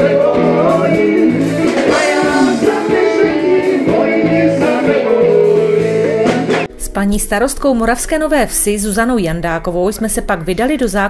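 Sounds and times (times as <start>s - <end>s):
drums: 0.0s - 6.8s
guitars: 0.0s - 7.0s.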